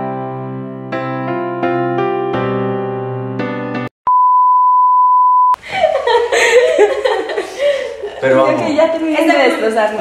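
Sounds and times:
test tone beep: 4.1s - 5.6s
people talking and laughing: 5.6s - 10.0s.

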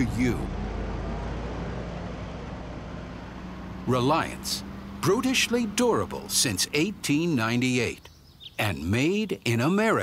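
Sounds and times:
truck engine rumbling: 0.0s - 10.0s.

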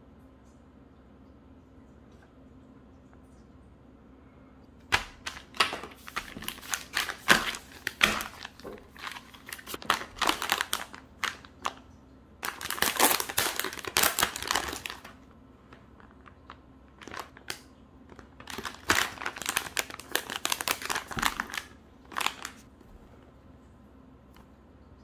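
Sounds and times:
plastic pouch crinkling: 4.9s - 11.8s, 12.4s - 22.7s.

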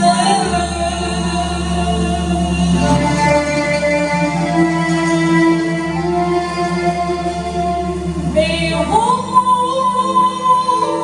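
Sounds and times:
woman singing: 0.0s - 7.7s, 8.3s - 11.0s
violins and clarinet ensemble: 0.0s - 11.0s.

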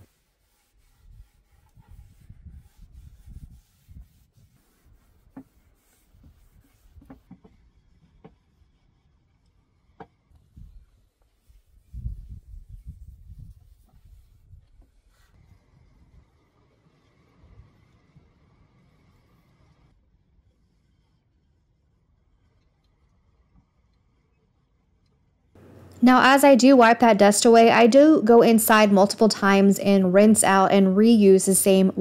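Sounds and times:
cloth rubbing on wood: 0.0s - 7.4s.

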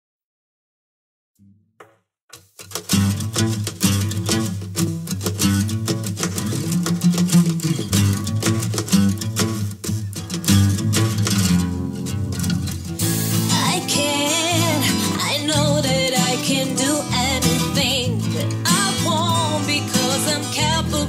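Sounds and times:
strummed acoustic guitar: 2.3s - 21.0s
person singing: 13.2s - 21.0s.

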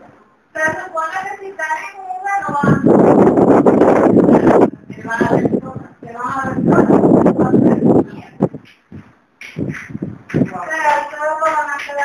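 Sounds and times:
loud rough noise: 2.6s - 4.8s.

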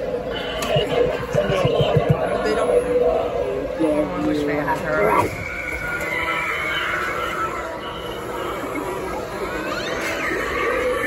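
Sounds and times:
high wavering shriek: 5.1s - 11.0s.

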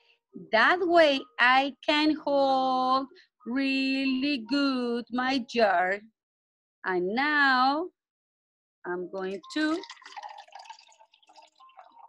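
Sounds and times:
water pouring into a glass: 9.3s - 12.0s.

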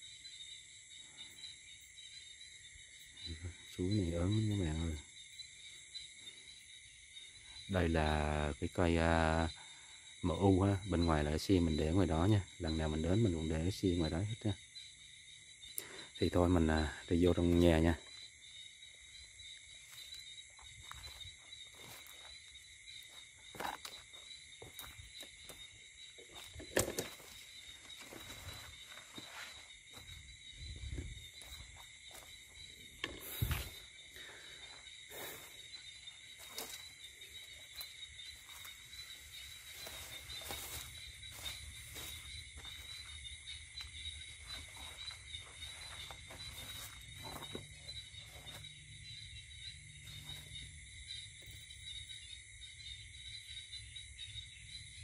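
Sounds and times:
night insects chorus: 0.0s - 55.0s
footsteps through weeds: 19.8s - 32.6s, 36.3s - 43.2s, 44.3s - 48.7s.

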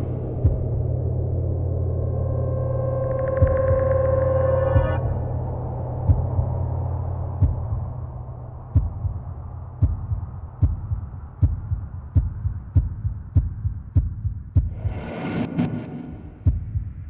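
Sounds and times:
low drone: 0.0s - 12.2s, 14.7s - 16.6s
heartbeat thumps: 0.4s - 1.0s, 3.4s - 4.0s, 4.8s - 5.2s, 6.0s - 6.6s, 7.3s - 8.0s, 8.7s - 17.0s.

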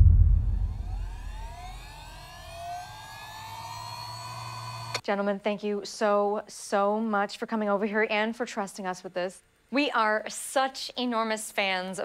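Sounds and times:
deep boom: 0.0s - 2.5s
high tones gliding upward: 0.0s - 4.4s.

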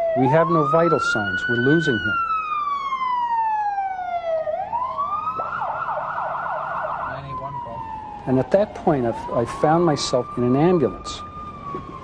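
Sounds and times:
ambulance siren wailing: 0.0s - 12.0s
siren rapid yelp: 0.0s - 12.0s.

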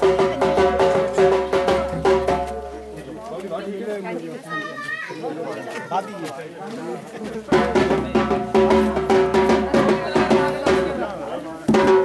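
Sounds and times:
crowd talking: 0.0s - 12.0s
children's voices: 4.4s - 6.4s.

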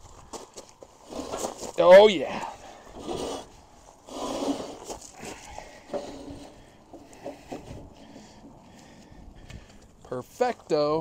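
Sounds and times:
metal scraping on metal: 2.9s - 7.8s.

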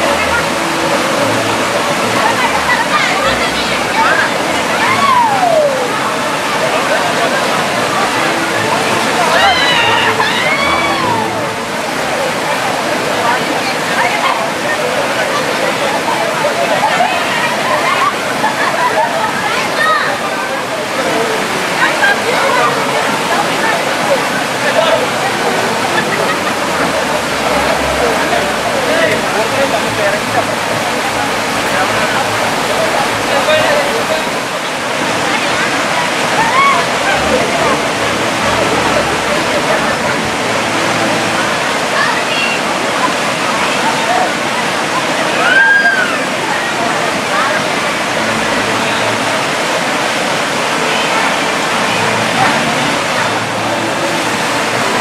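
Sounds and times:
flowing stream water: 0.0s - 55.0s.

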